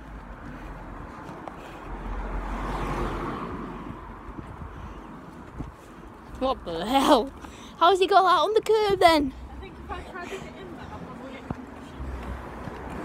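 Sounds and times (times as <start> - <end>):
car driving past: 0.3 - 5.5.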